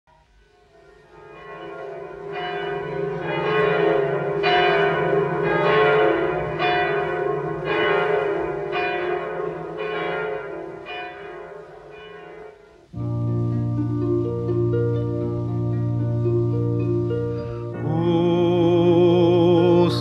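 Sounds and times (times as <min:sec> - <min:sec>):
church bells tolling: 0:00.7 - 0:20.0
low drone: 0:12.9 - 0:20.0.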